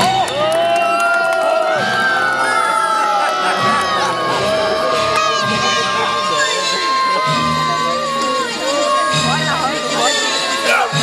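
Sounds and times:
children cheering and shouting: 0.0 - 11.0.

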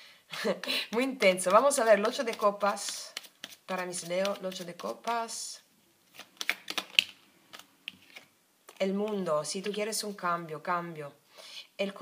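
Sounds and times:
cards clicking and sliding: 1.5 - 5.2, 6.1 - 9.8.

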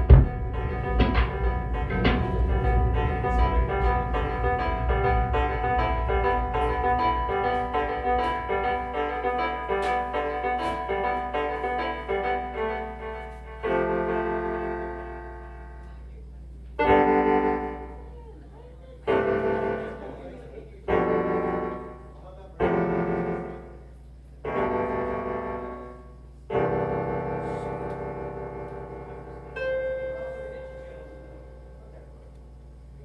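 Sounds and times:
slow piano-like keyboard chords: 0.0 - 33.0
steady low hum: 0.0 - 33.0.

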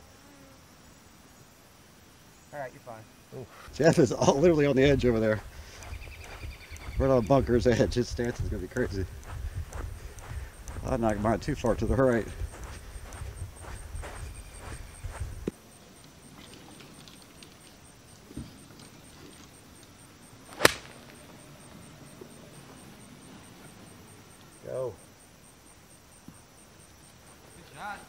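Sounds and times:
golf club striking ball: 20.5 - 21.2.

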